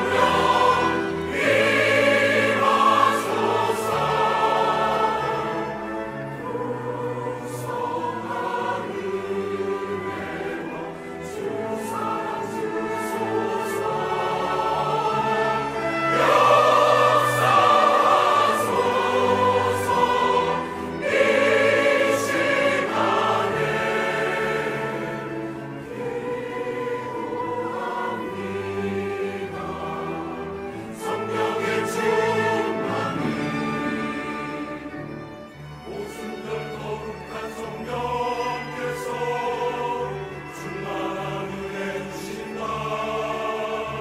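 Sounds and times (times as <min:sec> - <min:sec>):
chamber orchestra: 0:00.0 - 0:44.0
mixed choir singing: 0:00.0 - 0:44.0.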